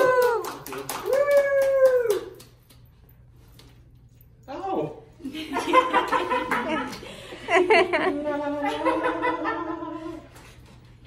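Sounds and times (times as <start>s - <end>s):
woman cheering: 0.0s - 2.4s
people clapping: 0.0s - 2.9s, 5.9s - 7.2s.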